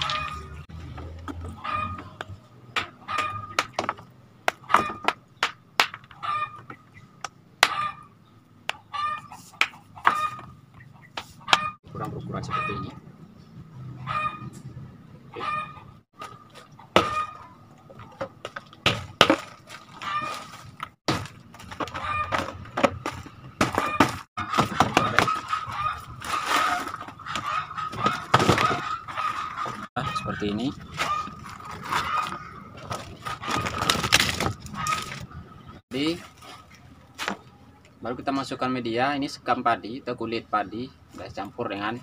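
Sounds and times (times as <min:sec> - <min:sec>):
chicken clucking: 0:01.4 - 0:03.6, 0:08.7 - 0:13.0, 0:21.9 - 0:22.6, 0:23.8 - 0:33.8.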